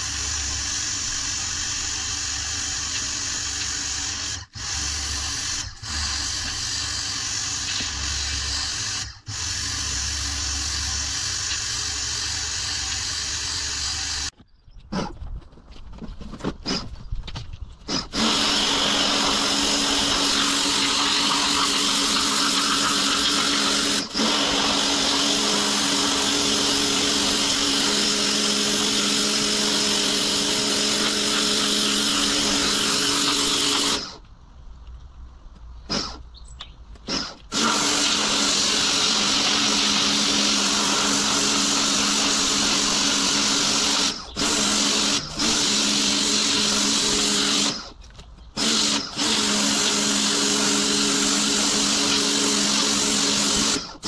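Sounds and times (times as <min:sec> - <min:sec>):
pressure washer pump running: 0:00.0 - 0:14.3, 0:18.0 - 0:34.2, 0:37.1 - 0:47.9, 0:48.6 - 0:54.0
water jet hissing on stone: 0:18.2 - 0:28.1.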